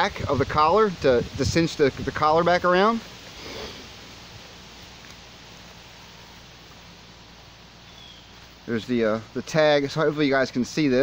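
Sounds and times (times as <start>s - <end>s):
quiet outdoor background noise: 0.0s - 11.0s.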